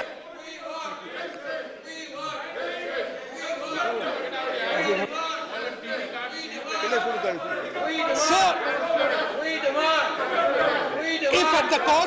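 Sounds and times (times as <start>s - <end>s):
crowd shouting slogans: 0.0s - 12.0s.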